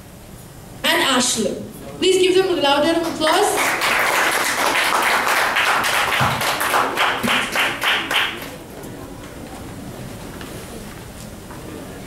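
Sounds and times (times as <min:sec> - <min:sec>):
audience applauding: 0:03.0 - 0:08.6.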